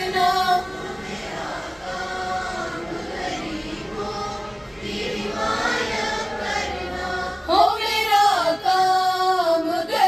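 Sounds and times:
girls singing in unison: 0.0s - 10.0s.

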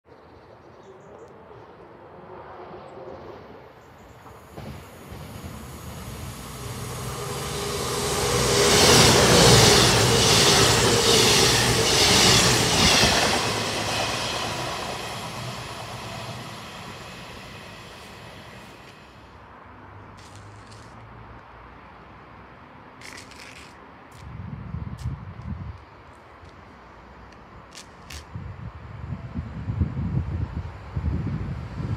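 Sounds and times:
passenger train passing: 1.4s - 19.4s, 30.0s - 31.9s
wheels clattering on rail: 4.2s - 6.8s.

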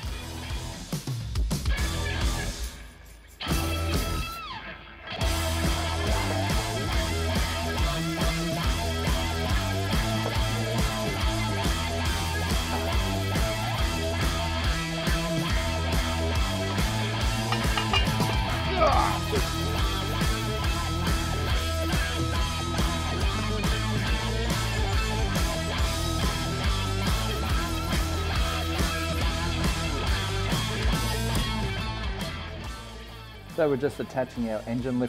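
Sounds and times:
rock music with guitar: 0.0s - 33.8s.

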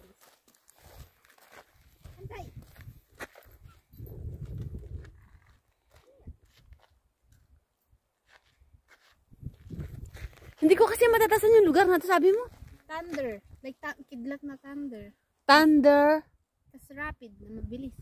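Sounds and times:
footsteps on gravel: 0.0s - 3.6s, 4.4s - 7.5s, 8.2s - 13.6s.

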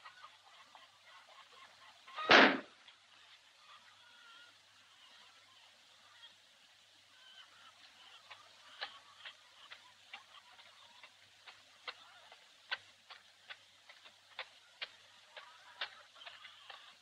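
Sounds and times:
faint irregular clicks: 7.0s - 17.0s.

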